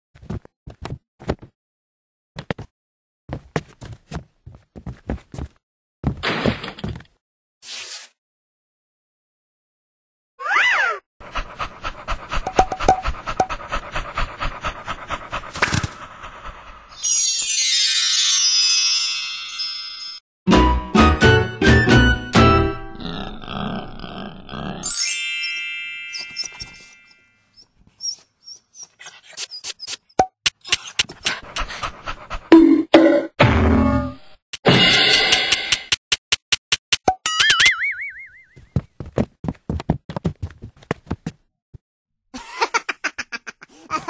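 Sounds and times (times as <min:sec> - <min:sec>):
cartoon dog panting: 0:11.2 - 0:16.9, 0:30.6 - 0:32.8.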